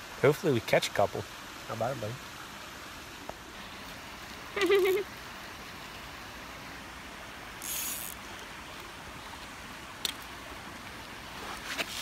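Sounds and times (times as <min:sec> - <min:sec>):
mountain stream running: 0:00.0 - 0:12.0
brief hiss: 0:07.6 - 0:08.2.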